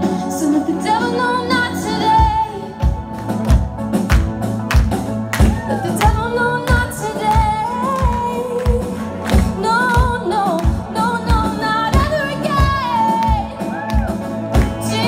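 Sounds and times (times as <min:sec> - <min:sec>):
drum kit beat: 0:01.8 - 0:15.0.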